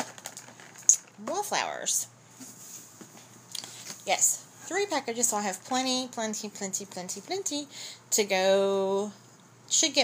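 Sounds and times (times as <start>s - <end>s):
plastic and card packs rustling: 0.0s - 1.5s.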